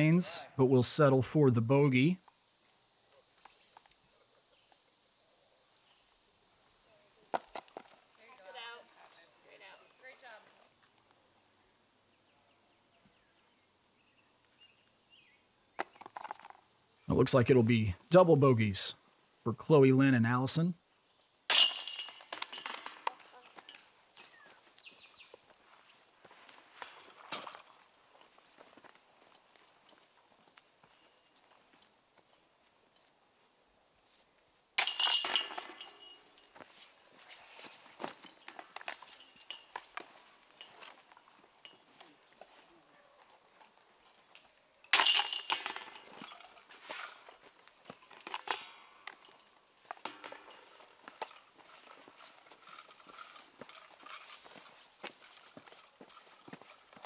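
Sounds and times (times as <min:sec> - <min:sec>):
disc hitting basket chains: 0:21.5 - 0:24.0, 0:34.8 - 0:41.8, 0:44.9 - 0:51.4
soft chain clinks: 0:21.5 - 0:25.0, 0:34.8 - 0:42.2, 0:44.8 - 0:54.6.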